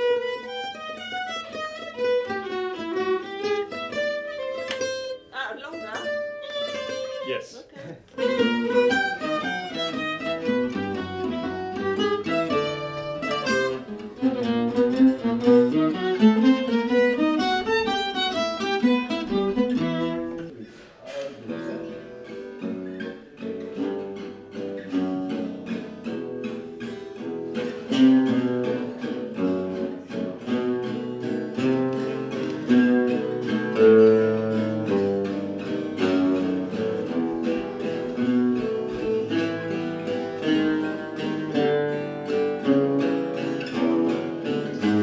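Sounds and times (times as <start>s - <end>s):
violin melody: 0.0s - 20.5s
strummed acoustic guitar chords: 0.0s - 45.0s.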